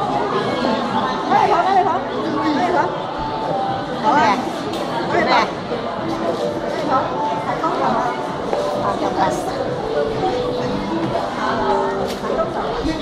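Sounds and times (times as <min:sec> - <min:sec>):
indistinct chatter: 0:00.0 - 0:13.0.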